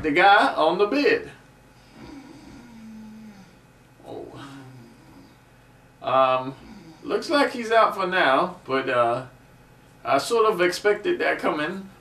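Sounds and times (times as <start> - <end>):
man snoring: 1.8 - 5.4, 6.4 - 7.2.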